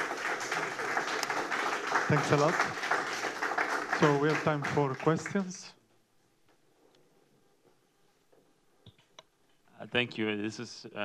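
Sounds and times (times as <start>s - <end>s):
man speaking: 2.1s - 2.7s, 4.0s - 5.8s, 9.7s - 11.0s.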